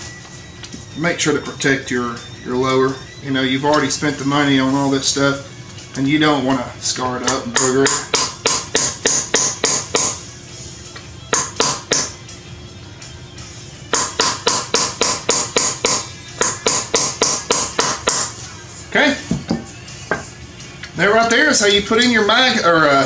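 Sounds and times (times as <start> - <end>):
hammer tapping metal punch: 7.2 - 10.2, 11.3 - 12.2, 13.9 - 18.4.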